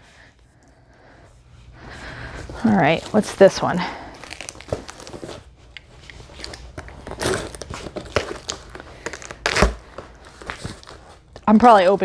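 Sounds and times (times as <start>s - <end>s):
cardboard and tape ripping: 4.1s - 5.4s, 6.3s - 11.2s.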